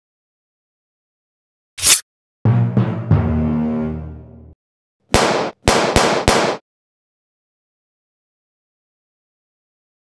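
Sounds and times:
pistol gunshots: 0:05.1 - 0:06.6.

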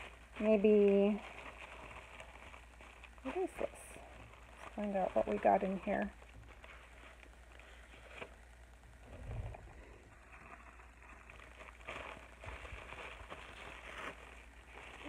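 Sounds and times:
bubble wrap crinkling: 0:00.0 - 0:15.0
paper envelope rustling: 0:00.0 - 0:15.0.

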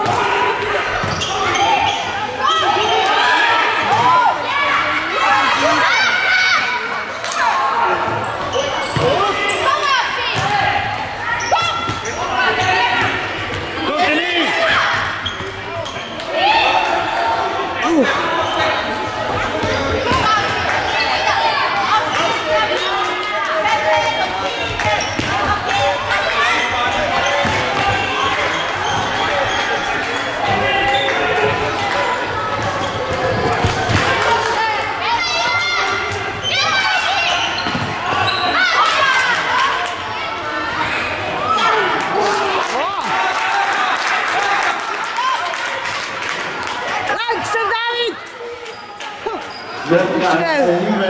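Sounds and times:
crowd chatter: 0:00.0 - 0:51.0
people calling and shouting: 0:00.0 - 0:51.0
ball kicked and bouncing: 0:37.6 - 0:37.9.

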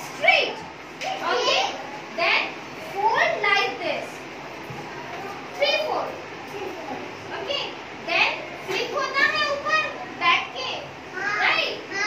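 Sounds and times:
children chattering: 0:00.0 - 0:04.0, 0:04.6 - 0:12.0.

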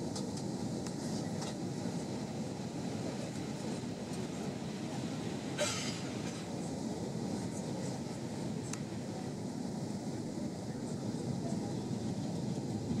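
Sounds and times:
airplane cabin drone: 0:00.0 - 0:13.0.

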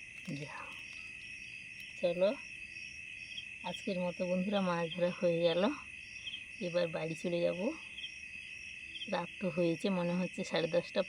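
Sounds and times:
crickets chirping: 0:00.0 - 0:11.0
person speaking: 0:00.2 - 0:00.8.

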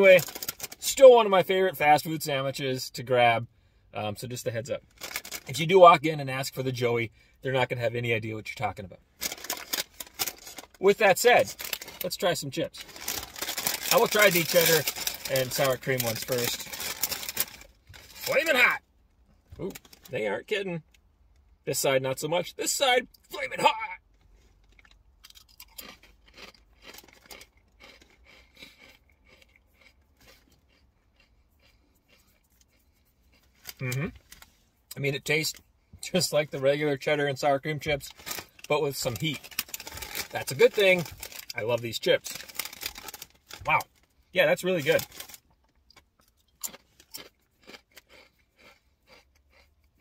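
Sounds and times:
person chewing potato chips: 0:00.2 - 0:00.8, 0:04.9 - 0:05.5, 0:09.2 - 0:12.1, 0:12.8 - 0:18.8, 0:23.4 - 0:34.5, 0:38.1 - 0:44.1, 0:44.7 - 0:50.0.

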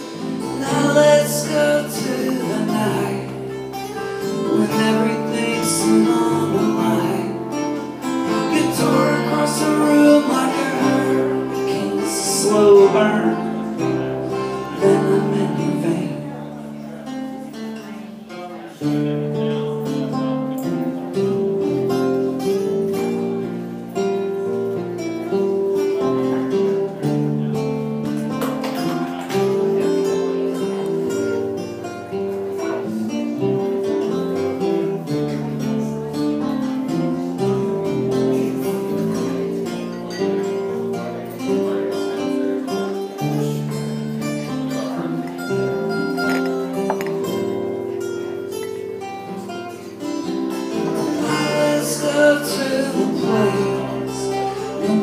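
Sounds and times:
bass guitar playing: 0:00.0 - 0:17.6, 0:19.0 - 0:55.0
acoustic guitars playing: 0:00.0 - 0:55.0.

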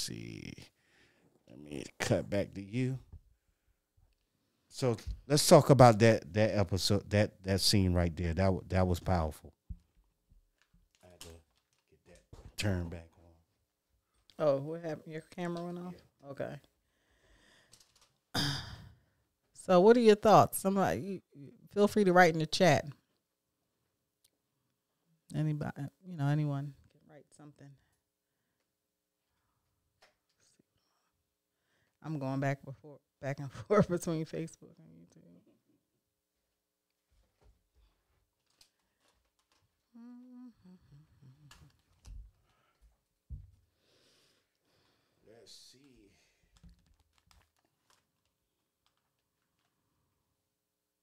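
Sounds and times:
person sighing: 0:18.4 - 0:19.0, 0:39.9 - 0:41.7
person humming: 0:39.9 - 0:41.8.

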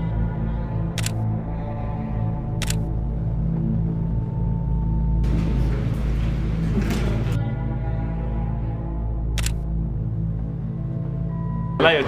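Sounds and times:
background music with low tone: 0:00.0 - 0:12.0
camera shutter clicks: 0:01.0 - 0:01.2, 0:02.6 - 0:02.9, 0:09.4 - 0:09.6.

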